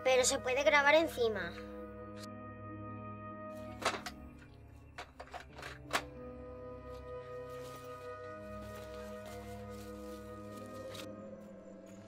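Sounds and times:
soft film score: 0.0 - 12.0.

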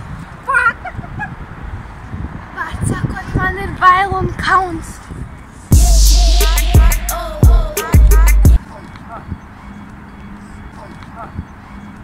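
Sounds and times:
steady low rumble: 5.7 - 8.6.

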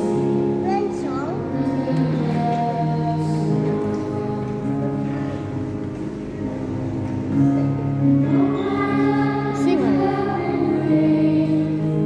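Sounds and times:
sustained backing chords: 0.0 - 12.0
children singing into microphones: 0.9 - 5.3, 8.0 - 12.0.

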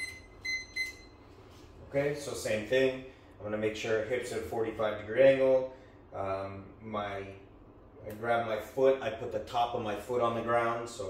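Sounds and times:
timer alarm beeping: 0.0 - 1.2.

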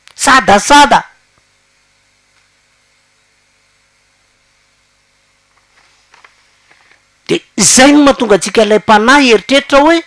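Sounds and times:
faint room tone hum and hiss: 0.0 - 10.0.

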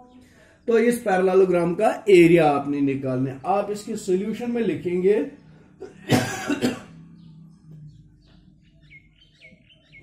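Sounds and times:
man coughing: 5.8 - 6.9.

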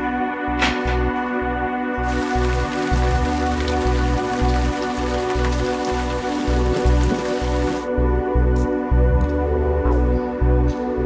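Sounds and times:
background music with low pulse: 0.0 - 11.0
rain hissing: 2.0 - 7.9.

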